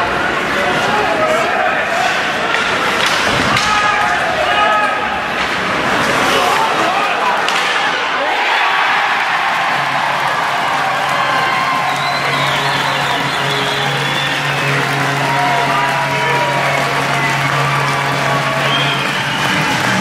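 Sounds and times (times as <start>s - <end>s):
crowd cheering and applauding: 8.1s - 20.0s
music over loudspeakers: 9.8s - 20.0s.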